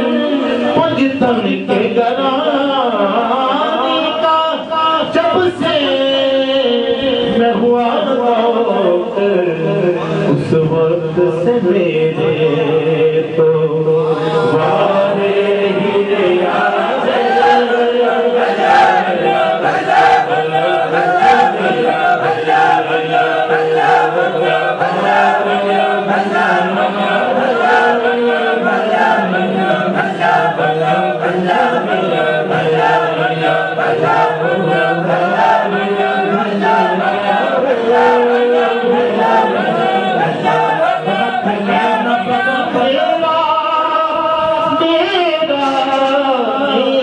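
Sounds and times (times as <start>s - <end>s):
group of voices chanting: 14.0s - 43.2s.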